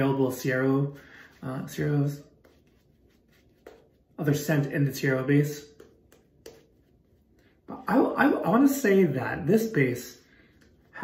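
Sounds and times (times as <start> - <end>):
shaving brush rubbing lather: 0.0 - 11.0.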